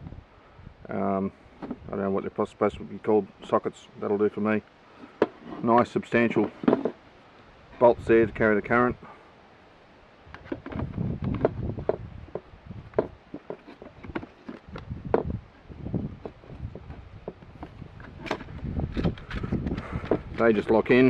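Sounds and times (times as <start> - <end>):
plastic parts clicking and knocking: 10.4 - 15.3, 16.2 - 20.8.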